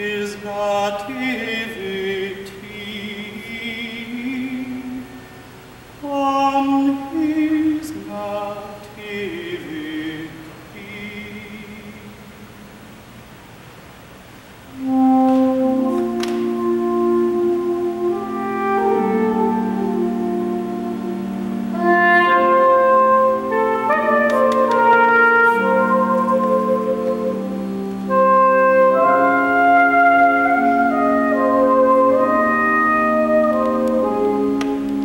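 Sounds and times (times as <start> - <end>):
pipe organ chords: 14.6 - 35.0
soprano saxophone melody: 14.7 - 35.0.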